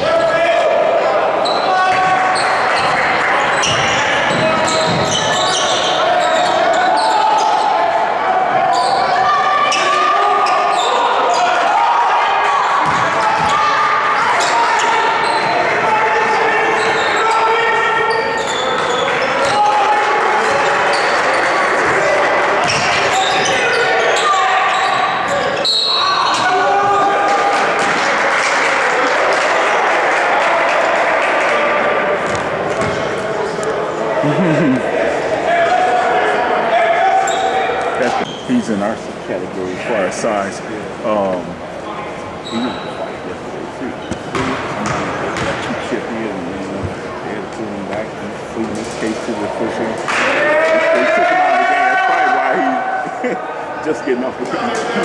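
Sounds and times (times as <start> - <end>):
voices calling out: 0.0 - 48.6
basketball bouncing on wooden floor: 32.3 - 33.0.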